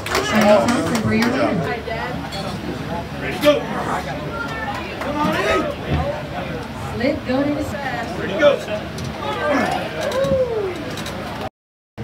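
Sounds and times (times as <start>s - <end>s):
crowd hubbub: 0.0s - 11.5s
men yelling and hollering: 9.1s - 10.9s
long drawn-out shout: 9.2s - 10.9s.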